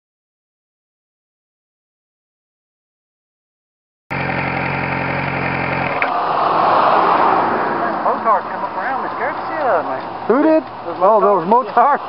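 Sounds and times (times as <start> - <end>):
motorcycle engine idling: 4.1 - 6.0
rushing noise: 5.4 - 12.0
voices talking: 6.0 - 12.0.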